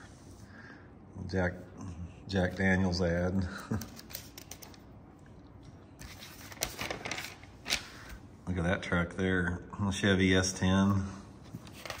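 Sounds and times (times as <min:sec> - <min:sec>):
magazine pages rustling: 0:06.0 - 0:08.1, 0:11.5 - 0:12.0.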